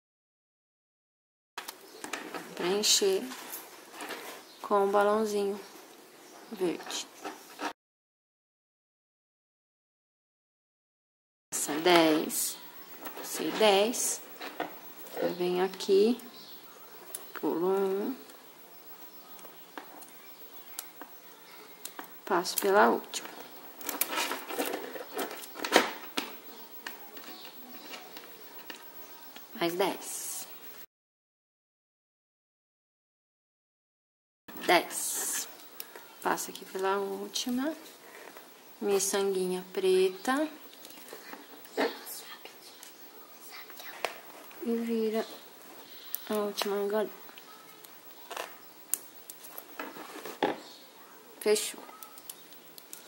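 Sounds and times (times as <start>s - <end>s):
beads clicking together: 51.7s - 53.0s.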